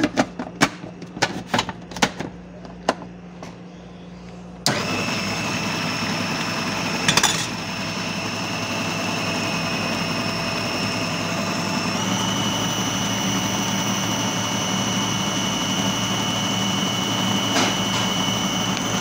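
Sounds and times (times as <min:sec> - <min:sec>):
food processor motor whining: 0:04.6 - 0:19.0.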